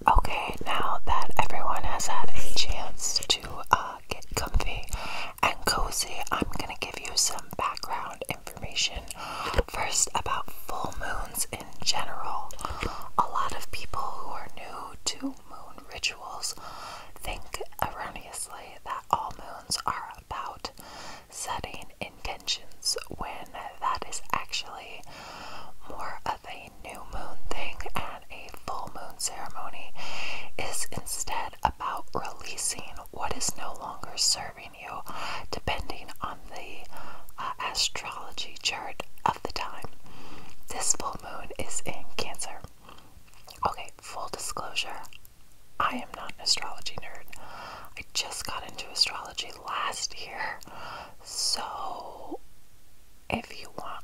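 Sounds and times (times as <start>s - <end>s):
woman whispering: 0.0s - 25.1s, 25.7s - 42.8s, 43.4s - 45.2s, 45.8s - 52.4s, 53.3s - 54.0s.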